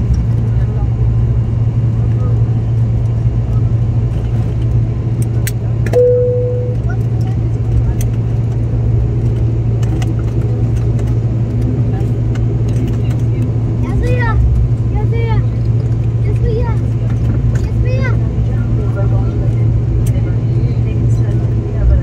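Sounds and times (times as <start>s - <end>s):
airliner engine drone: 0.0s - 22.0s
short tone: 5.9s - 6.9s.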